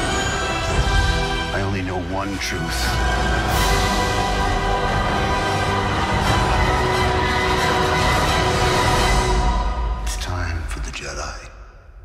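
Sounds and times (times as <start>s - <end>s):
cinematic music with held tones: 0.0s - 12.0s.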